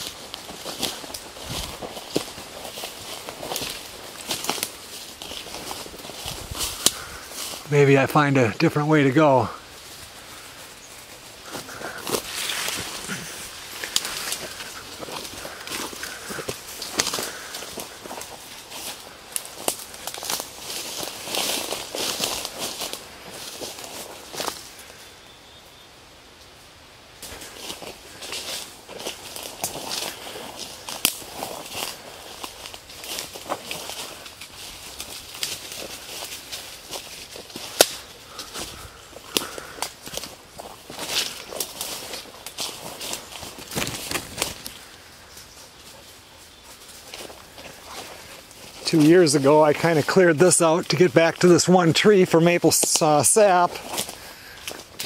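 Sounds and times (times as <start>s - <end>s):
leaves swishing against clothing: 0.0s - 8.0s, 9.6s - 25.0s, 27.2s - 52.4s
footsteps through brush: 0.0s - 25.8s, 26.4s - 55.0s
twig cracks: 6.6s - 7.1s, 11.9s - 18.4s, 27.2s - 32.0s, 37.4s - 40.3s, 40.9s - 44.9s
branch snapping: 30.9s - 31.3s, 37.4s - 38.2s, 43.6s - 44.8s.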